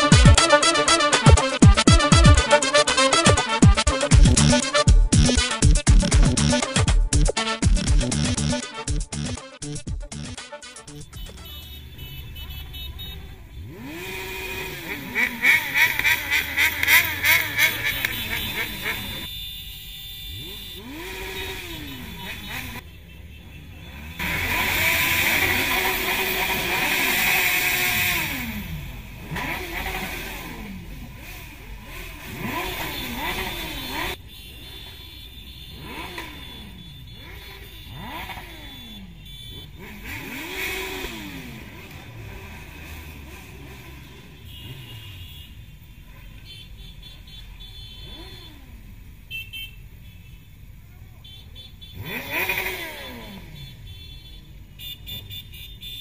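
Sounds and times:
motorcycle engines revving: 0:00.0 - 0:56.0.

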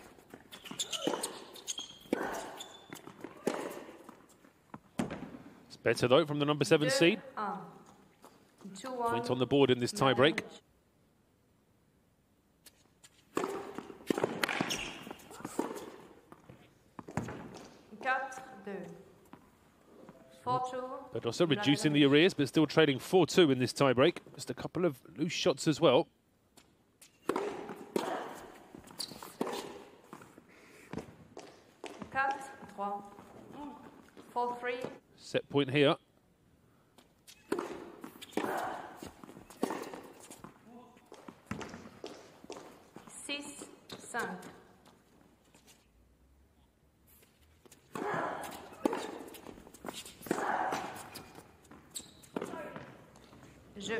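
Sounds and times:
racket striking ball: 0:02.1 - 0:04.1, 0:13.3 - 0:14.8, 0:27.2 - 0:28.6, 0:37.5 - 0:40.3, 0:47.9 - 0:49.4, 0:50.2 - 0:51.3
footsteps on court: 0:26.5 - 0:35.0, 0:37.0 - 0:45.9.

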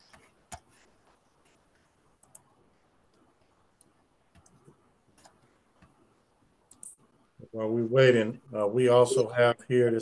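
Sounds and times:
faint clicks: 0:02.1 - 0:06.0.

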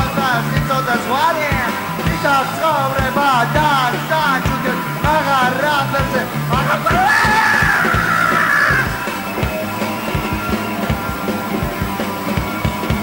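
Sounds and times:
punk rock band playing: 0:00.0 - 0:13.0.

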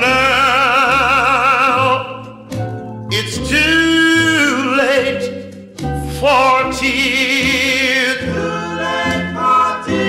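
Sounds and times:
vocal group harmony chords: 0:00.0 - 0:10.0.

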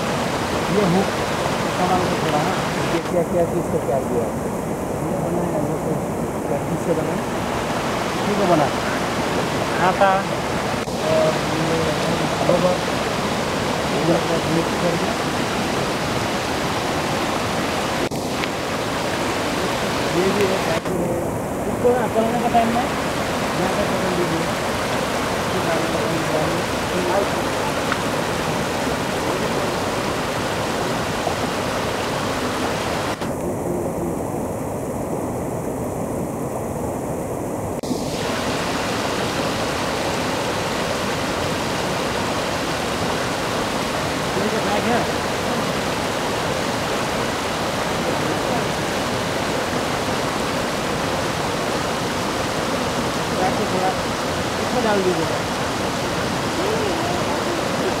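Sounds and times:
river rushing over boulders: 0:00.0 - 0:58.0
faint voice: 0:56.4 - 0:58.0.

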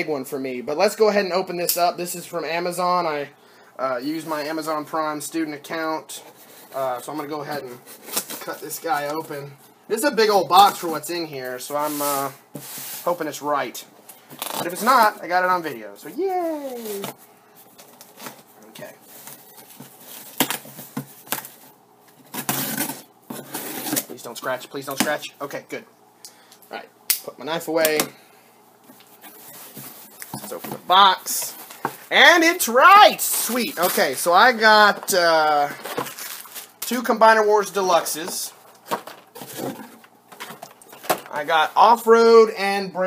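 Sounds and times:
packaging rustling: 0:33.0 - 0:37.1, 0:38.2 - 0:41.4.

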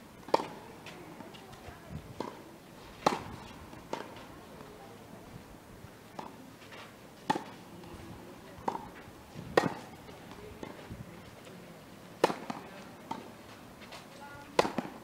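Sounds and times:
tennis ball struck by rackets: 0:00.2 - 0:01.5, 0:02.2 - 0:04.3, 0:07.2 - 0:08.0, 0:08.6 - 0:10.8, 0:12.2 - 0:13.3, 0:14.5 - 0:15.0
tennis ball bouncing: 0:00.2 - 0:01.6, 0:02.2 - 0:02.4, 0:03.0 - 0:04.3, 0:06.2 - 0:06.4, 0:07.2 - 0:08.0, 0:08.6 - 0:10.8, 0:12.2 - 0:13.3, 0:14.5 - 0:15.0.

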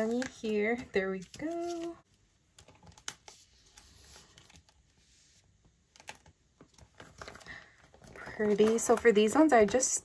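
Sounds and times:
light paper rustling: 0:00.0 - 0:05.4, 0:06.0 - 0:10.0.

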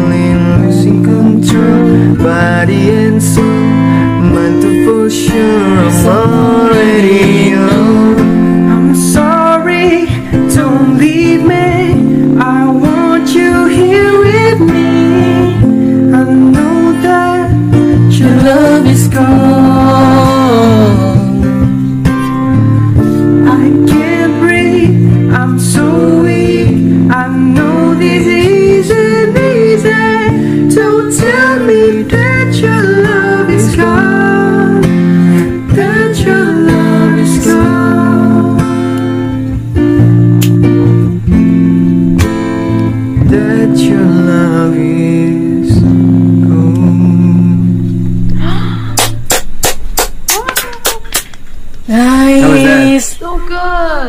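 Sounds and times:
man singing: 0:00.0 - 0:21.8, 0:23.4 - 0:39.0, 0:43.1 - 0:48.6, 0:51.9 - 0:53.2
acoustic guitar strummed: 0:00.0 - 0:54.0.

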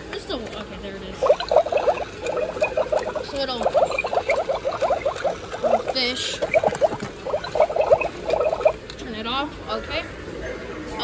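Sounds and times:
rapid electronic rising chirps: 0:01.2 - 0:08.8.

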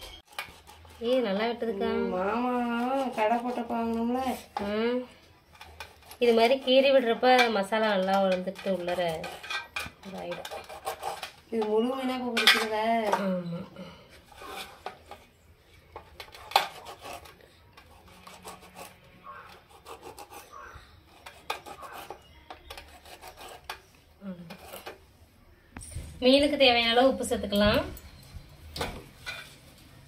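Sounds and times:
knife scraping steel plate: 0:05.5 - 0:12.8, 0:14.3 - 0:15.2, 0:16.3 - 0:25.0.

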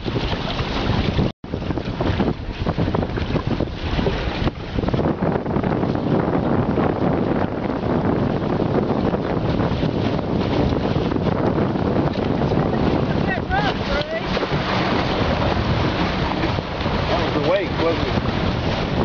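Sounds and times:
water rushing along hulls: 0:00.0 - 0:19.0
wind buffeting microphone: 0:00.0 - 0:19.0.

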